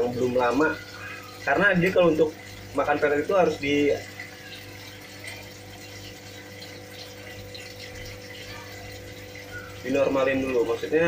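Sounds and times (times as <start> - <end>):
tank pump hum: 0.0 - 11.0
water pouring into fish tank: 0.0 - 11.0.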